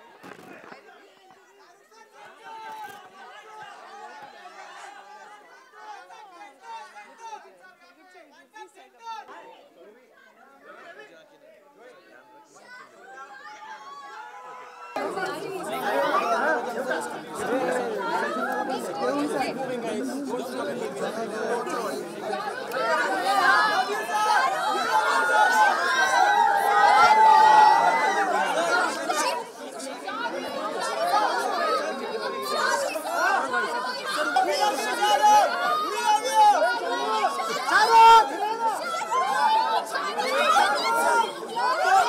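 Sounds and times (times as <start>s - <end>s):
crowd chatter: 0.0s - 42.0s.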